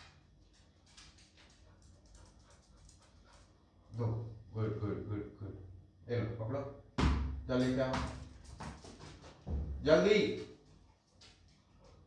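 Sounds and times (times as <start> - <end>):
dog panting faintly: 0.6 - 4.0.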